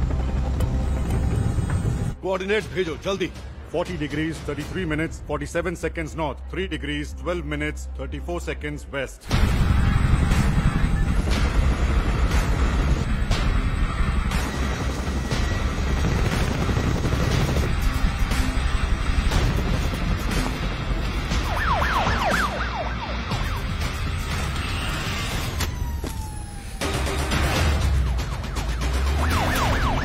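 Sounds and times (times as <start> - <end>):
helicopter engine and rotors: 0.0 - 2.2, 9.3 - 30.0
film score music: 0.0 - 30.0.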